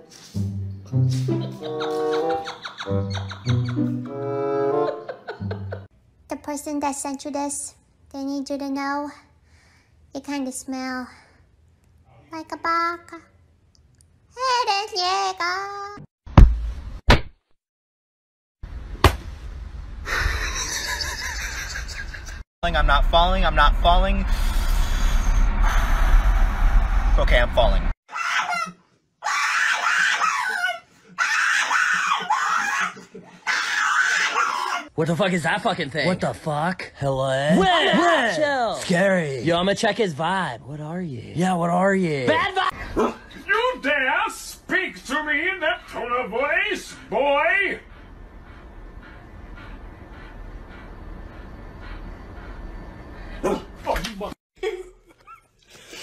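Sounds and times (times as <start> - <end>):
small dog screaming: 28.1 - 34.9
dog barking: 53.4 - 53.7.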